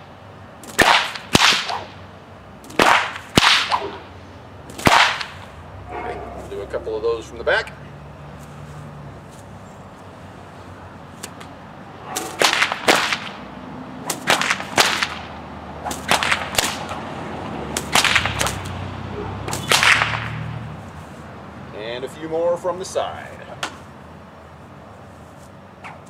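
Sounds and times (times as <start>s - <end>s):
bullwhip cracking: 0.6s - 2.0s, 2.6s - 4.1s, 4.7s - 5.5s, 11.2s - 17.0s, 17.7s - 20.5s
whip swishing: 0.6s - 2.0s, 2.6s - 4.1s, 4.7s - 5.5s, 12.1s - 13.4s, 14.0s - 17.0s, 17.7s - 20.5s.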